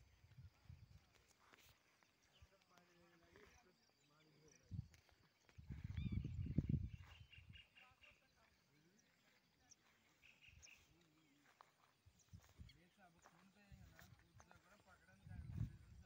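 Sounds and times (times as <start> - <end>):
faint distant voices: 0.1 - 16.0.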